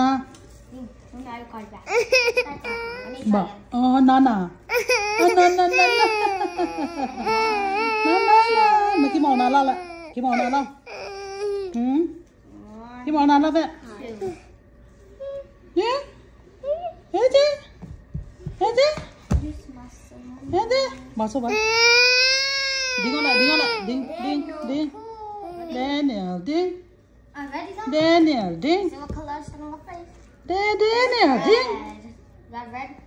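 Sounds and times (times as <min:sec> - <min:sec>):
toddler crying: 0:01.9 - 0:03.3, 0:04.7 - 0:11.8, 0:21.5 - 0:25.9.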